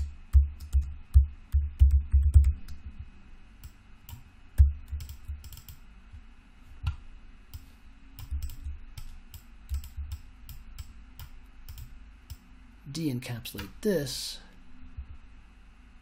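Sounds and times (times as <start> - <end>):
keyboard and mouse clicking: 3.6 - 5.8, 6.8 - 12.4.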